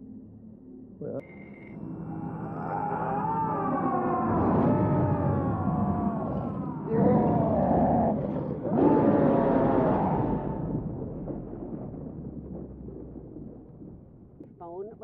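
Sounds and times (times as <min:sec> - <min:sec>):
long scream sliding down: 0:02.0 - 0:07.9
loud roars: 0:02.1 - 0:10.9.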